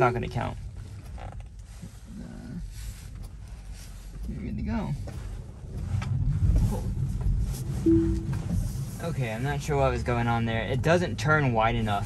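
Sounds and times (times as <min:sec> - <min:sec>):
short tone: 0:00.0 - 0:00.5, 0:07.9 - 0:08.6
road rumble inside car: 0:00.0 - 0:12.0.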